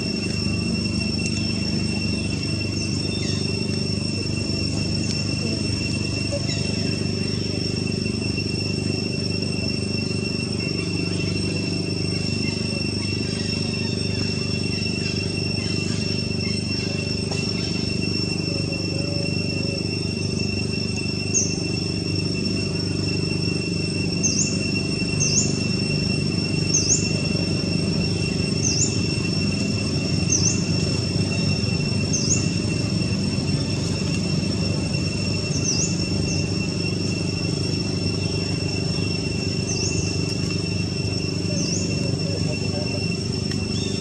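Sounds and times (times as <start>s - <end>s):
insect drone: 0.0s - 44.0s
low background rumble: 0.0s - 44.0s
bird chirps: 1.2s - 4.3s, 21.2s - 21.7s, 24.2s - 25.8s, 26.6s - 29.3s, 30.1s - 32.8s, 35.4s - 36.6s, 39.4s - 40.4s, 41.4s - 44.0s.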